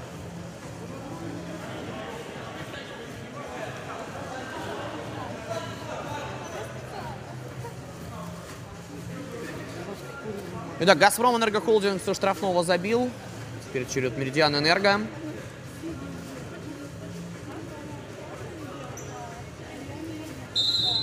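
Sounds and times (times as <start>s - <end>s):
indoor hall background noise: 0.0s - 21.0s.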